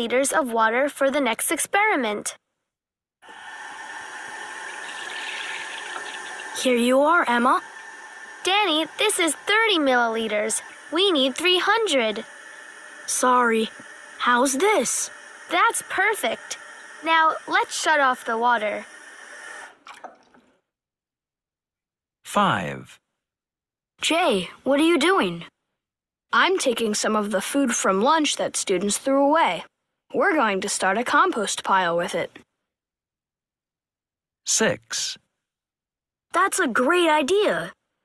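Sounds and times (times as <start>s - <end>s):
water running from a tap: 3.3s - 20.4s.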